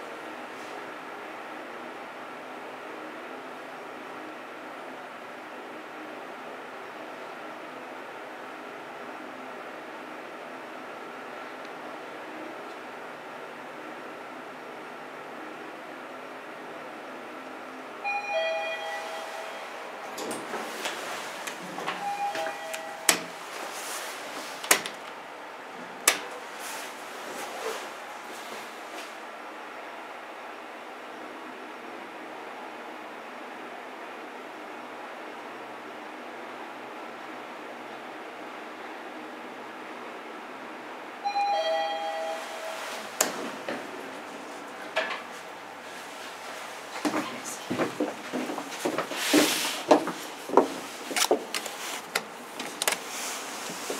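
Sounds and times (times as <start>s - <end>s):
elevator ride hum: 0.0s - 53.9s
two-tone elevator chime: 18.0s - 20.1s, 21.9s - 23.4s, 41.2s - 43.1s.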